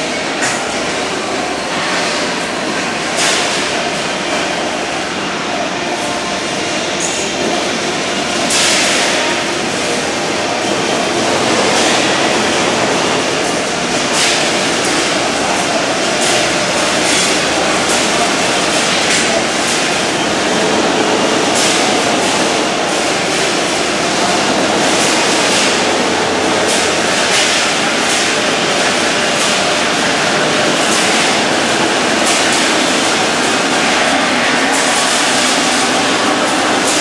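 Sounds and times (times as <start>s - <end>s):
factory machinery running: 0.0s - 37.0s.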